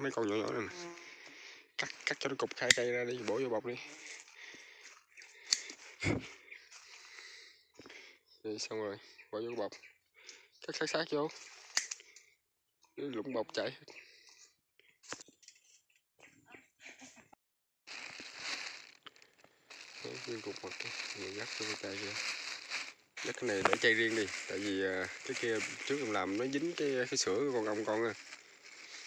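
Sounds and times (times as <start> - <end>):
leaves rustling: 3.2 - 4.8, 17.9 - 29.0
plastic bag crinkling: 17.9 - 29.0.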